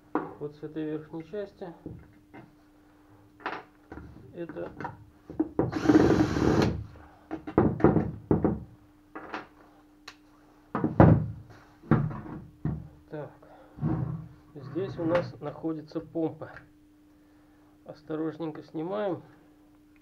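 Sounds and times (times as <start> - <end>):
cordless drill spinning: 5.7 - 6.8.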